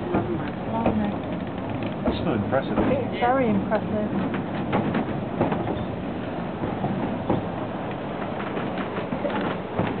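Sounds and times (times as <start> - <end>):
train rolling on rails: 0.0 - 10.0.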